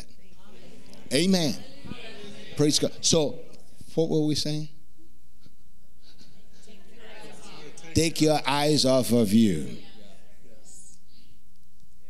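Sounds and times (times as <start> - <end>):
faint indistinct voices: 0.0 - 4.0, 6.0 - 12.0.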